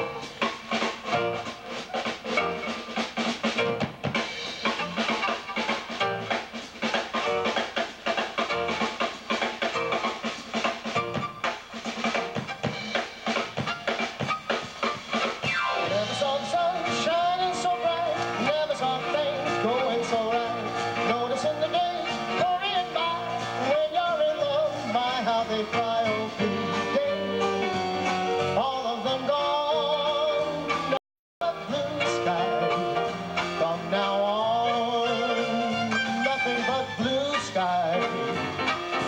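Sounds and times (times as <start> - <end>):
drum strokes: 0.0 - 26.3
live band playing: 0.0 - 39.0.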